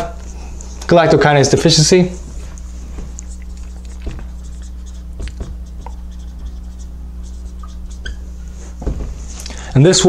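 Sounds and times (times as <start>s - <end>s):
steady low hum: 0.0s - 10.0s
marker writing on whiteboard: 3.2s - 8.3s.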